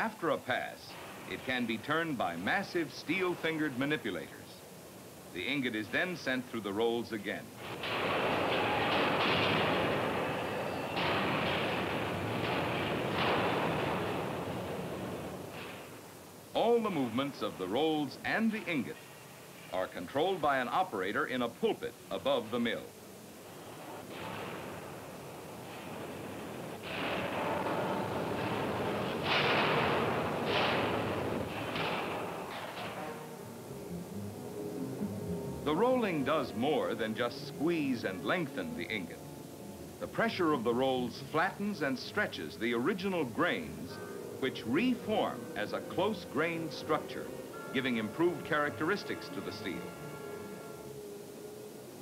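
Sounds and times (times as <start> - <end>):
rolling mill rumbling: 0.0 - 52.0.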